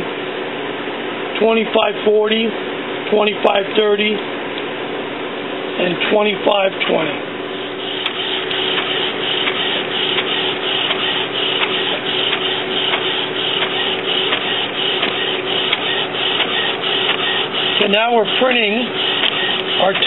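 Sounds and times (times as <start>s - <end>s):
inkjet printer printing: 6.5s - 20.0s.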